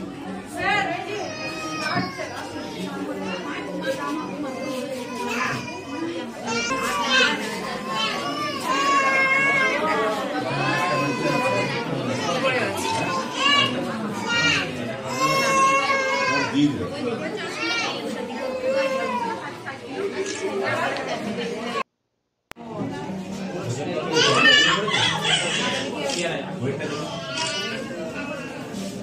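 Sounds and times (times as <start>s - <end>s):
chatter of voices: 0.0s - 21.9s, 22.6s - 29.0s.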